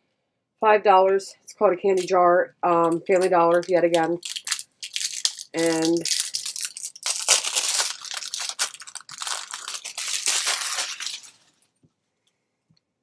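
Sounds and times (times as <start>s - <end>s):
paper packing crinkling: 2.8s - 11.7s.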